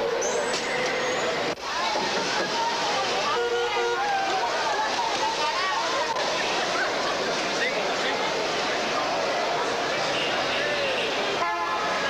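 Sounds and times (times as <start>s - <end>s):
crowd noise: 0.0s - 12.0s
vehicle horn: 3.2s - 4.1s, 10.1s - 12.0s.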